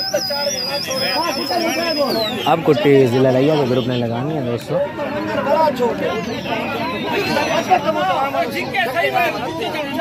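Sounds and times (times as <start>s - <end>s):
men talking over one another: 0.0s - 10.0s.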